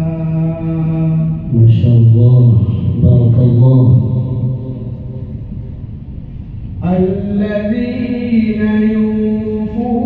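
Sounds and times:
man reciting melodically: 0.0 - 5.0, 6.8 - 10.0.

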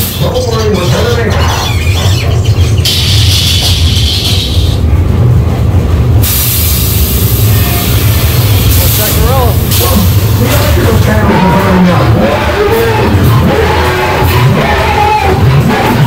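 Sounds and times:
ride train rumbling: 0.0 - 16.0
loud hissing bursts: 6.2 - 11.3.

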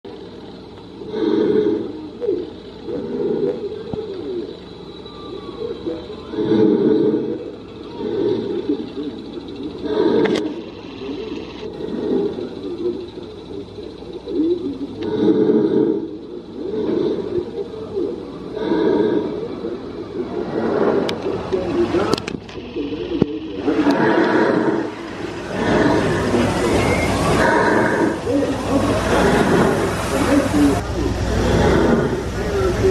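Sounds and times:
muffled voices talking: 0.1 - 32.9.

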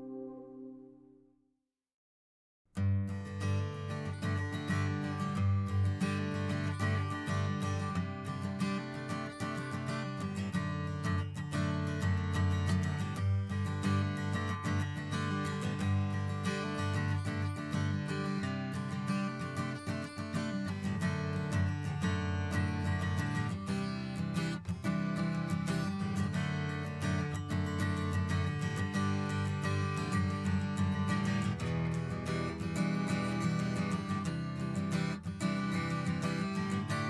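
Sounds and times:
strummed acoustic guitar music: 2.8 - 37.0.

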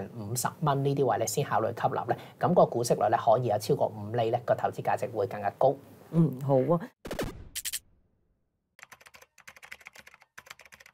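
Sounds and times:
keyboard typing clicks: 8.8 - 10.9.

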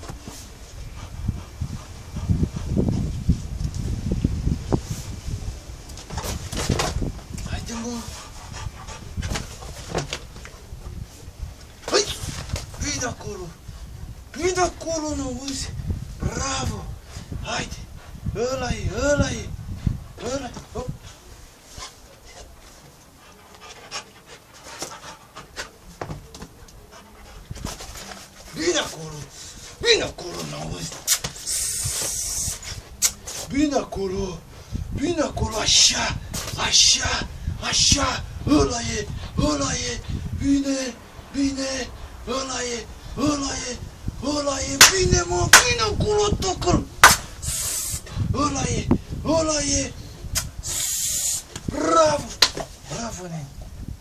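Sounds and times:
dog panting hard: 0.7 - 3.1, 7.5 - 10.2, 22.9 - 29.8
man calling: 7.4 - 8.3, 11.8 - 13.6, 28.5 - 34.4, 35.0 - 50.0, 50.6 - 53.6
dog hissing breath through nose: 31.0 - 33.5, 47.2 - 48.3, 50.3 - 51.6.

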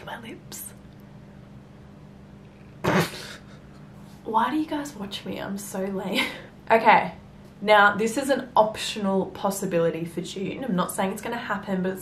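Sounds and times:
steady low hum: 0.0 - 12.0
woman coughing: 2.8 - 3.5.

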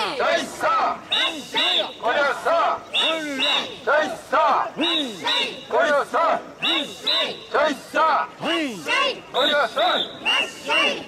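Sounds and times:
crowd chanting in unison: 0.0 - 11.0.

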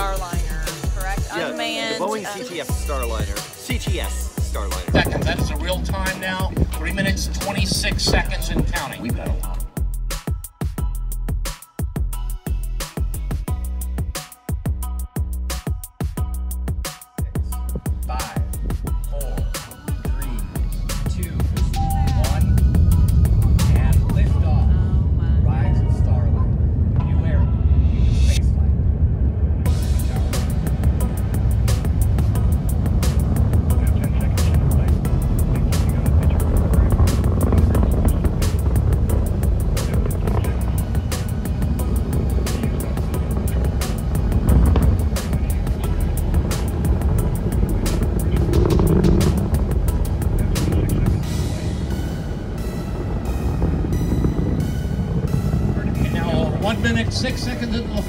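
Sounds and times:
rocket engine rumble: 2.6 - 9.8, 17.4 - 58.0.

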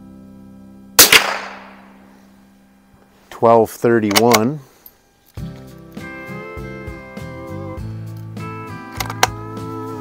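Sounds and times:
rifle bolt clicks: 1.0 - 1.8, 4.0 - 4.5
guitar music: 5.4 - 10.0.

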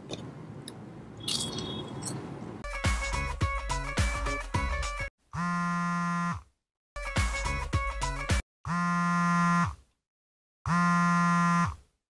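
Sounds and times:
smartphone vibrating: 5.3 - 6.5, 8.7 - 9.8, 10.7 - 11.8.

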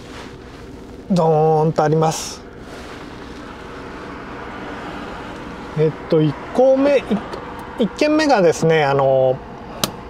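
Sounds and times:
van engine idling: 0.0 - 10.0.

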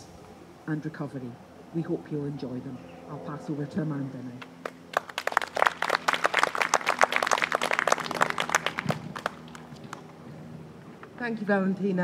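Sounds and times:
group of people applauding: 4.6 - 10.0.

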